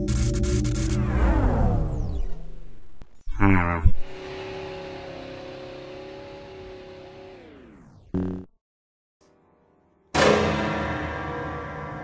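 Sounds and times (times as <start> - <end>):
electronic power-down hum: 0.0 - 4.6, 7.2 - 8.5.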